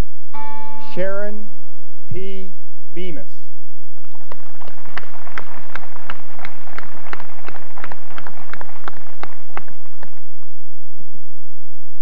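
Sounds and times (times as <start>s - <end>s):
audience applauding: 4.0s - 10.4s.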